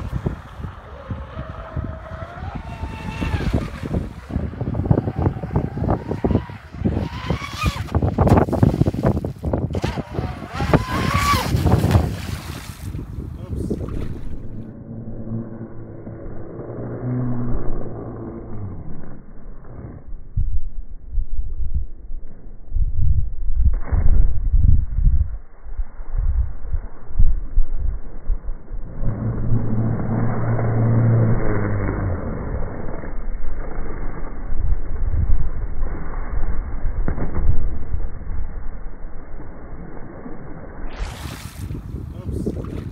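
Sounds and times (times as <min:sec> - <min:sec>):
electric boat motor whining: 0:00.0 - 0:08.1, 0:09.8 - 0:11.6
wind buffeting microphone: 0:00.0 - 0:15.9, 0:40.9 - 0:42.9
muffled low hum: 0:13.3 - 0:25.5, 0:26.4 - 0:41.0.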